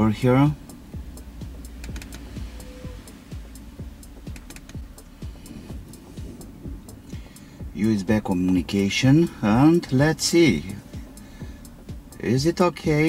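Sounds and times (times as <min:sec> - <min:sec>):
low hum: 0:00.0 - 0:13.0
laptop keyboard keys clicking: 0:01.8 - 0:02.2, 0:04.3 - 0:04.8.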